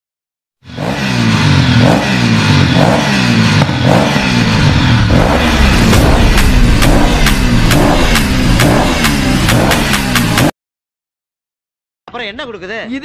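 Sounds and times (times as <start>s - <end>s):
engine revving in pulses: 0.6s - 10.5s.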